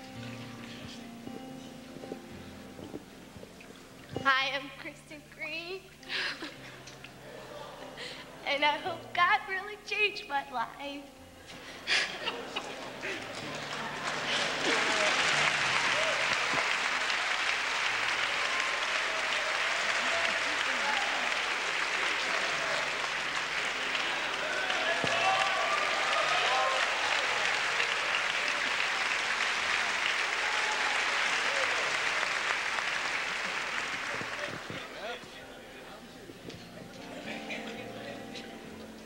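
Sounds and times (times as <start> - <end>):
congregation applauding and cheering: 11.8 - 36.0
people shouting: 24.1 - 27.5.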